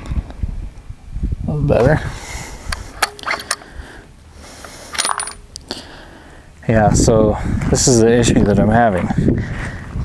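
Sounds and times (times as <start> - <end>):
rifle bolt clicks and scrapes: 2.7 - 3.7
ringing metal clinks: 4.9 - 5.5.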